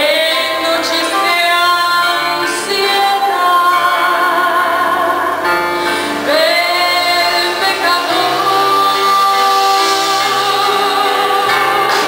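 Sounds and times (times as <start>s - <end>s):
woman singing with vibrato: 0.0s - 12.0s.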